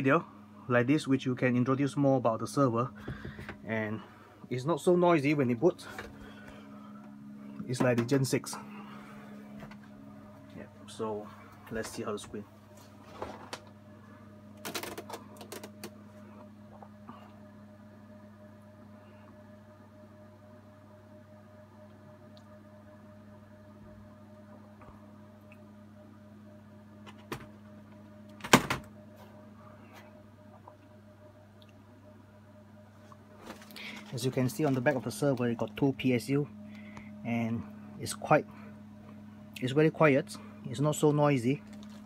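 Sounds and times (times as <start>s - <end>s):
cooling fans humming: 0.0s - 42.0s.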